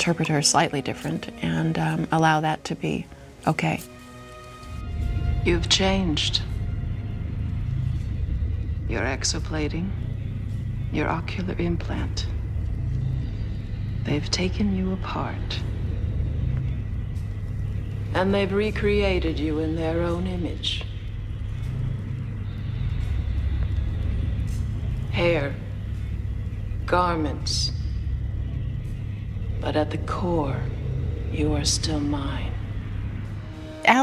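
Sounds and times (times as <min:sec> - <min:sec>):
woman speaking: 0:00.0 - 0:03.9, 0:29.6 - 0:32.7
low rumbling drone: 0:00.0 - 0:34.0.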